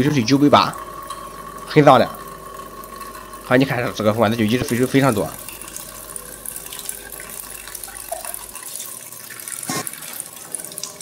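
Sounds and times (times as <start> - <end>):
waste-water tube flowing: 0.0 - 11.0
water running into steel sink: 0.0 - 11.0.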